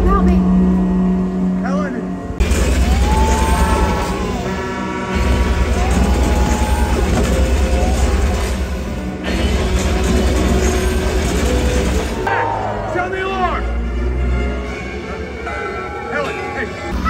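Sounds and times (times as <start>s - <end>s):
boat engine running loud: 0.0s - 8.2s
loud show music: 2.4s - 15.4s.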